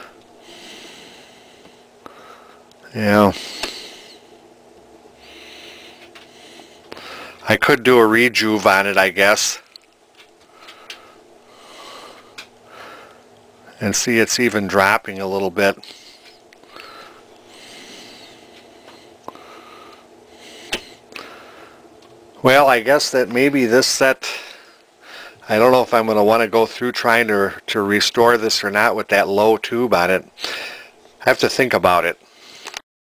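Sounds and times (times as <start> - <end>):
faint steady hum: 0.0 - 32.8
soft breathy noises: 5.2 - 7.5, 10.4 - 13.4, 15.8 - 21.9.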